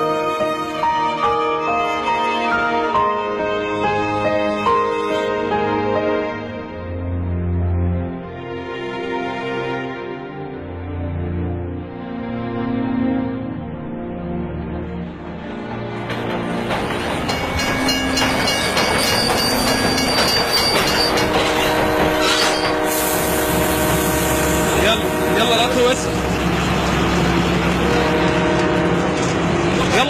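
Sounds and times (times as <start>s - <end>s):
train rumbling: 14.5s - 30.0s
train horn blasts: 17.8s - 26.3s, 27.7s - 30.0s.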